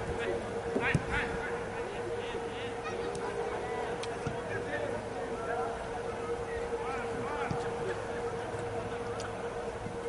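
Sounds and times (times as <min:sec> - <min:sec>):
distant voices shouting: 0:00.0 - 0:10.0
steady humming tone: 0:00.0 - 0:10.0.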